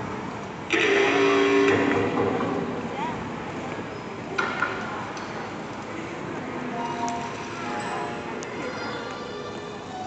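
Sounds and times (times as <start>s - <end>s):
hall background noise: 0.0s - 10.0s.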